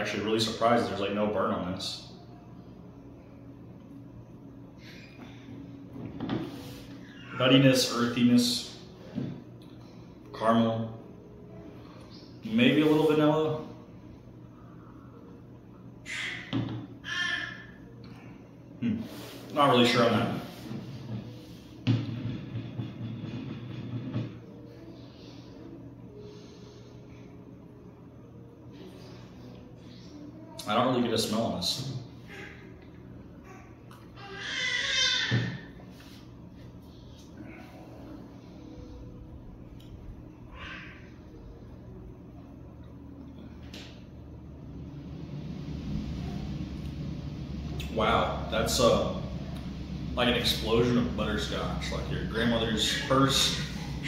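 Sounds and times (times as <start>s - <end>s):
room fan humming: 0.0s - 54.0s
breathy hisses: 18.2s - 19.6s.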